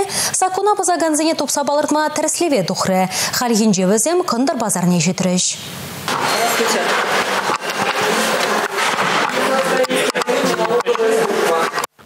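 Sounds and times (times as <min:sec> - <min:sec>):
shopping centre ambience: 0:00.0 - 0:12.0.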